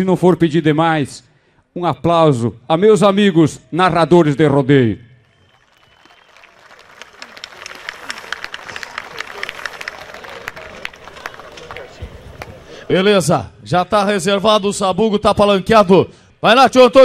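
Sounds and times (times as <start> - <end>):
audience applauding: 5.3 - 12.9.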